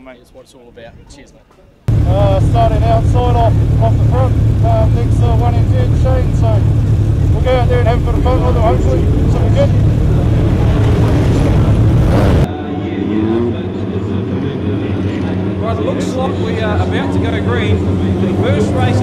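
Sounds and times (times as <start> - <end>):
voices: 0.0 - 19.0
race car engine revving: 1.9 - 19.0
race car engine running: 1.9 - 19.0.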